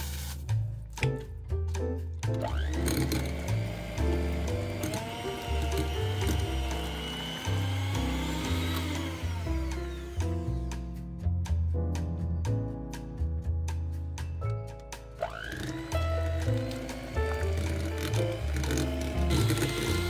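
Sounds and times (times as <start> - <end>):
background music with bass line: 0.0 - 20.0
electric hand mixer motor: 2.4 - 10.7, 15.2 - 20.0.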